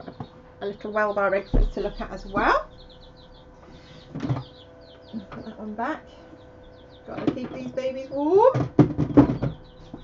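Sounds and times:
chicks peeping: 0.0 - 10.0
faint steady hum: 0.0 - 10.0.

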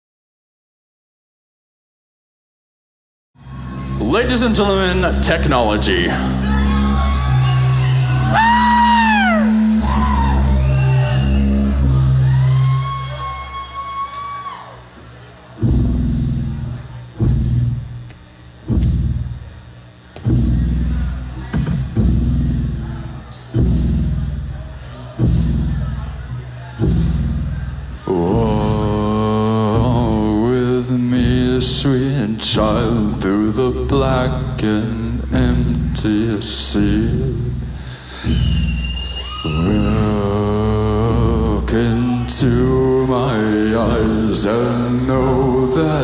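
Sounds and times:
upright bass low notes: 3.4 - 13.0, 15.5 - 46.0
man singing a long note: 28.0 - 37.6, 39.4 - 46.0.

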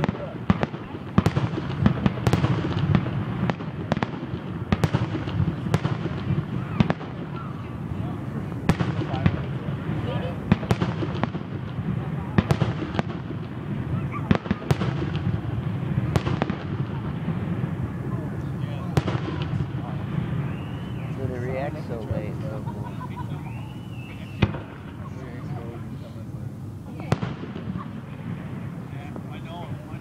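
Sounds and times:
crowd murmur: 0.0 - 30.0
fireworks bangs and crackles: 0.0 - 30.0.

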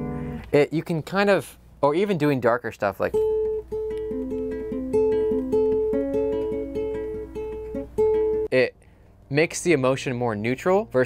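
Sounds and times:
classical guitar fingerpicking: 3.2 - 8.5.

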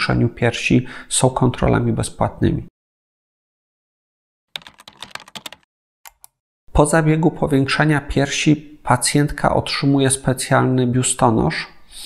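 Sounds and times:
keyboard key clicks: 4.6 - 6.4.

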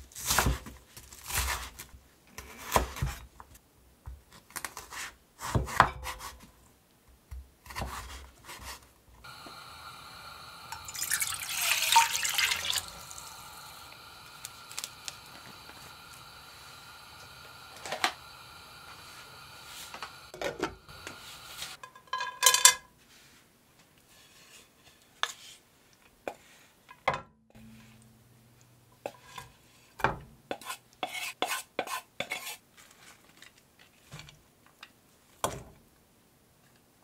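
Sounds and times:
faint steady hum: 9.2 - 21.8
running water: 9.3 - 20.3
dry noodles crackling rustle: 14.2 - 15.9.

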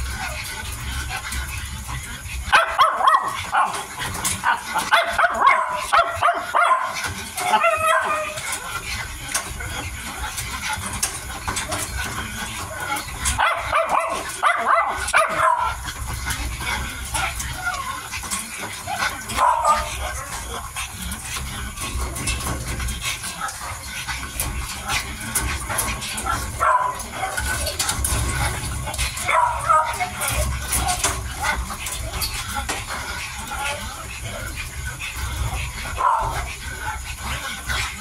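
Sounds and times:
puppies chewing clicks: 0.0 - 38.0.

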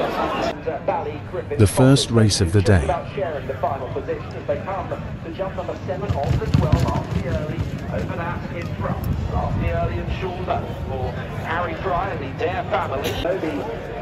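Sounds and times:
voices: 1.5 - 3.2
horses galloping on turf: 5.9 - 9.5.

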